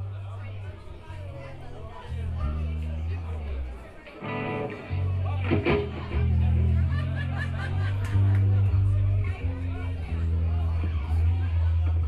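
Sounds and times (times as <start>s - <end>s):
electric guitar and bass: 1.3s - 12.0s.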